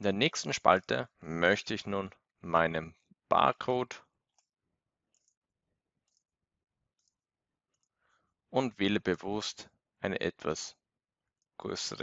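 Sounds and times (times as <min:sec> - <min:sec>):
computer mouse clicks: 0:05.1 - 0:05.4, 0:06.0 - 0:06.3, 0:06.9 - 0:08.0.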